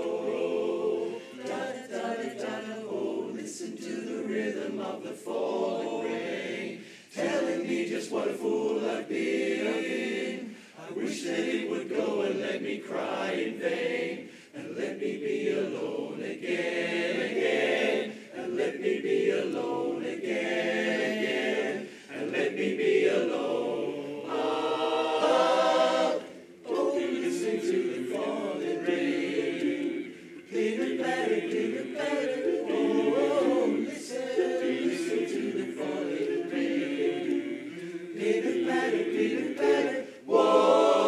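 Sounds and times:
men's chorus singing a cappella: 0.0s - 41.0s
singers breathing: 6.8s - 7.2s, 10.4s - 10.9s, 14.2s - 14.6s, 18.1s - 18.4s, 21.8s - 22.2s, 30.1s - 30.4s, 40.0s - 40.3s.

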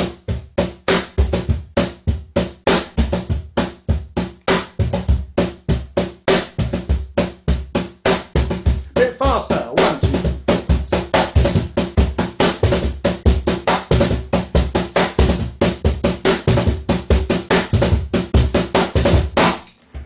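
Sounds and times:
cajon played by hand: 2.5s - 19.7s.

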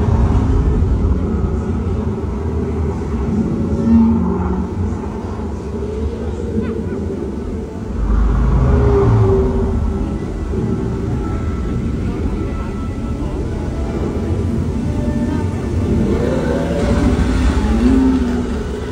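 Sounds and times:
ride boat rumble: 0.0s - 18.9s
faint pitched tones: 1.1s - 18.9s.

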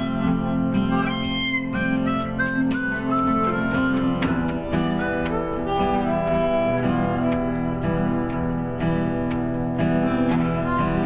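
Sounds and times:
harmonica melody: 0.0s - 11.0s
strummed acoustic guitars: 0.0s - 11.0s.

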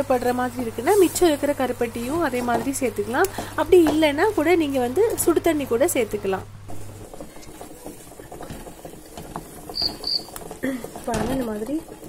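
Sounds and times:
wooden spatula scraping a pan: 0.5s - 12.0s
short high squeaks: 9.7s - 10.3s.

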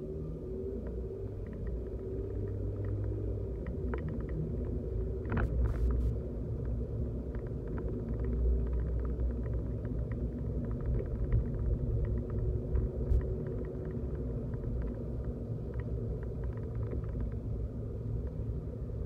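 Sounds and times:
car cabin low rumble: 0.0s - 19.0s
faint steady hum: 0.0s - 19.0s
faint ticks and rattles: 0.8s - 19.0s.

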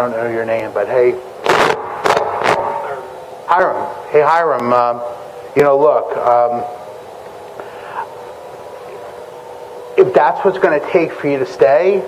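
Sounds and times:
faint two-tone hum: 0.0s - 12.0s.

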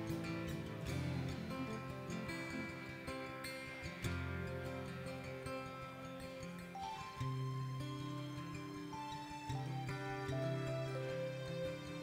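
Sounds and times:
soft instrumental worship music: 0.0s - 12.0s.

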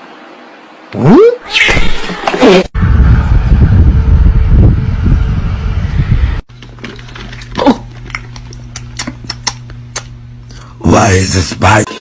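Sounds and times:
steady low hum: 2.8s - 12.0s.

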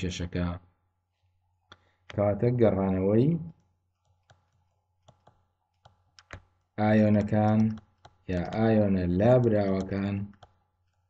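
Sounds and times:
person speaking: 2.1s - 3.6s, 6.8s - 10.4s
stylus tapping on a pen tablet: 4.0s - 11.0s.

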